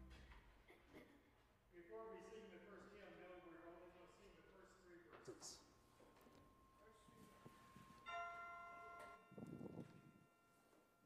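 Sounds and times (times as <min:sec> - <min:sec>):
bell-like chord ringing: 0:06.4 - 0:11.0.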